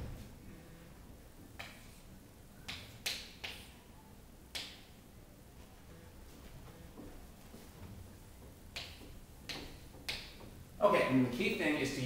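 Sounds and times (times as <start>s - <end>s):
chalk striking on chalkboard: 8.8s - 10.5s.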